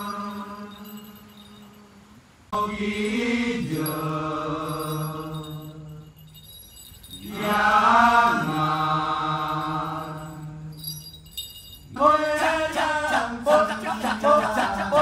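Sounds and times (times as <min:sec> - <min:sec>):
man chanting long held phrases: 0:12.0 - 0:15.0.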